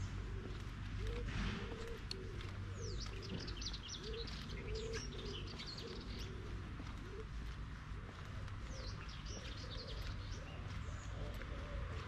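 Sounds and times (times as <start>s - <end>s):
doves cooing: 0.0s - 12.0s
small birds chirping: 0.0s - 12.0s.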